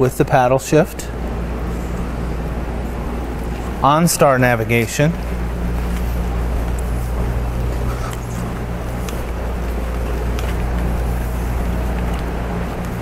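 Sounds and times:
car engine idling hum: 0.0 - 13.0.

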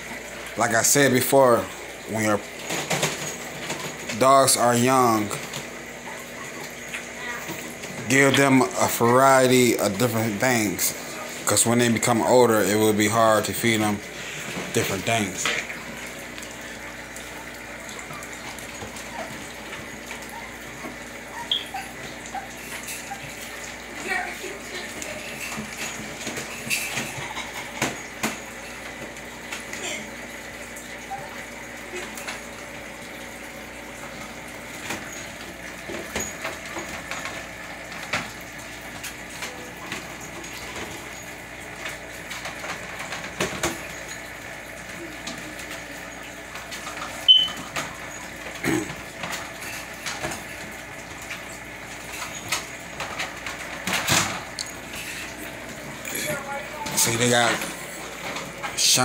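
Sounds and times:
steady room hum: 0.0 - 59.0
dogs moving in wire crates: 46.5 - 59.0.

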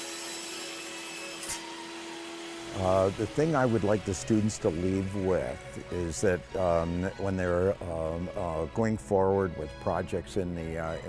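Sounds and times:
table saw whirring: 0.0 - 11.0.

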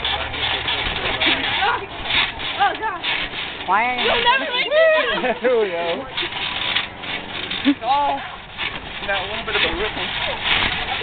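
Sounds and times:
trampoline mat rustling: 0.0 - 11.0
young people shrieking and laughing: 4.2 - 5.8.

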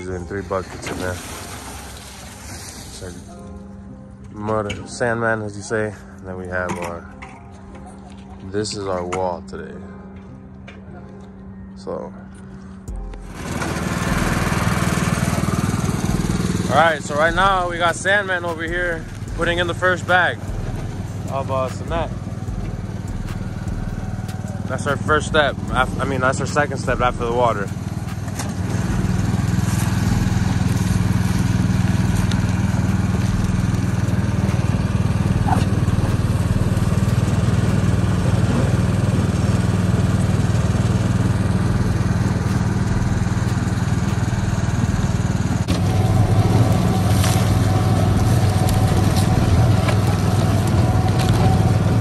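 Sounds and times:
mortar mixer engine humming: 12.9 - 52.0.

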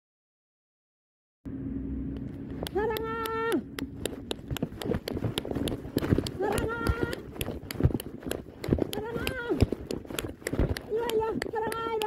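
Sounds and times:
running footsteps: 2.5 - 12.0
woman shouting: 2.7 - 3.7, 6.3 - 7.3, 8.9 - 9.8, 10.8 - 12.0.

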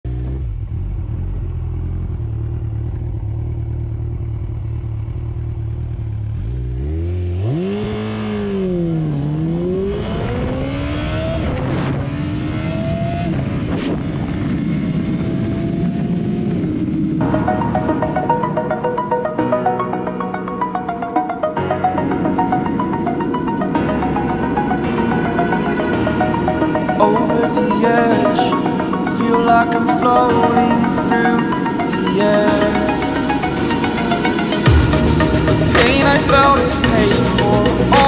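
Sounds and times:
motorcycle engine accelerating: 0.0 - 19.3
electronic music: 16.5 - 38.0.

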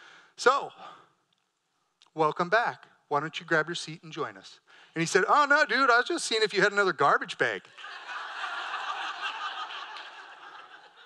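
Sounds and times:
audience laughing: 7.7 - 11.0.

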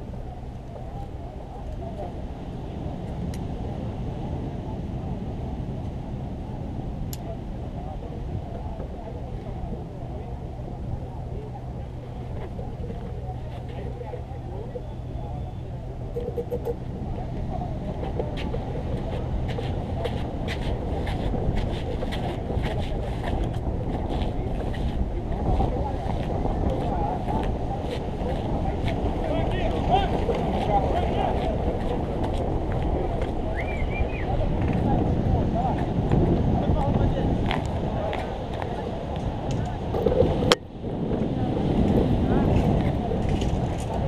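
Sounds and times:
faint indistinct voices: 0.0 - 44.0
wind on microphone: 0.0 - 44.0.

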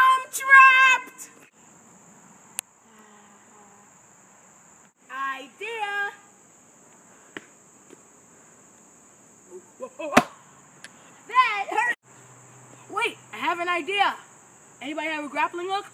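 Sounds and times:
insects droning: 0.0 - 15.9.

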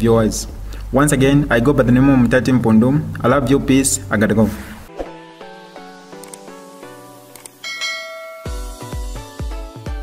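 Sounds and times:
soft background music: 0.0 - 10.0
bright bell ding: 7.6 - 9.1.

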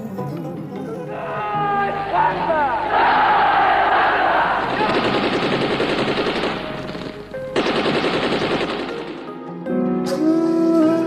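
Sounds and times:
machine-gun fire in bursts: 4.6 - 9.4.

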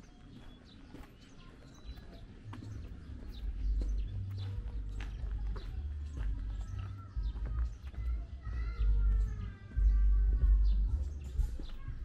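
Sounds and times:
footsteps on concrete: 0.0 - 12.0.

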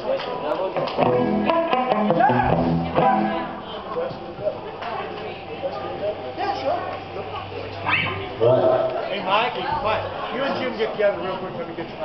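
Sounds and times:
crowd voices in hall: 0.0 - 12.0
steady low hum: 1.0 - 12.0.

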